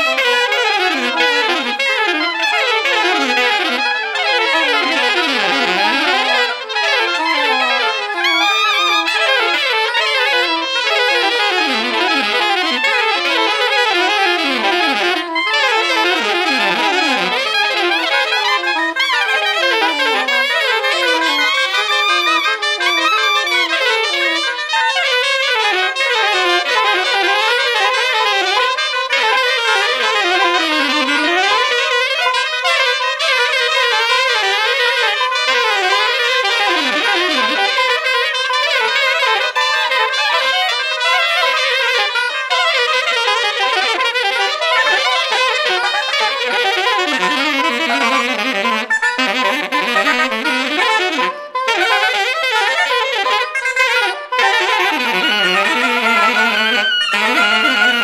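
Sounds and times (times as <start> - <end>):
saxophone quartet playing jazz: 0.0 - 58.0.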